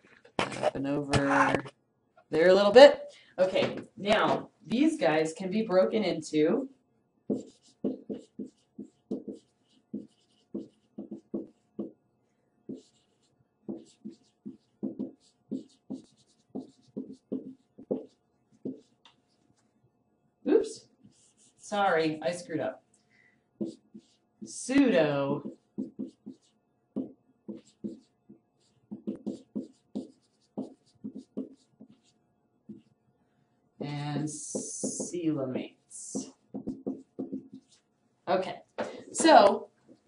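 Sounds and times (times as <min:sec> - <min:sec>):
marker squeaking on whiteboard: 0:07.3 - 0:12.0, 0:12.7 - 0:19.7, 0:21.0 - 0:21.9, 0:23.6 - 0:33.0, 0:36.0 - 0:37.9.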